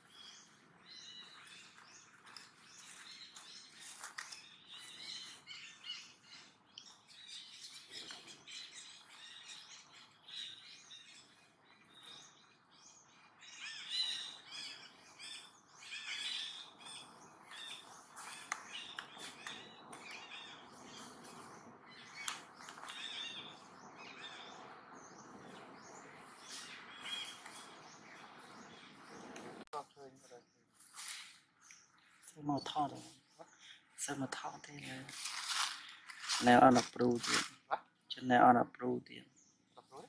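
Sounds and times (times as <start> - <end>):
birds chirping: 0.0 - 40.0.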